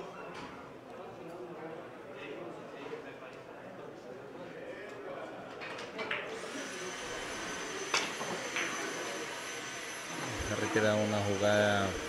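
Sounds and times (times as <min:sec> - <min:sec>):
high-pitched whine: 0:06.8 - 0:12.0.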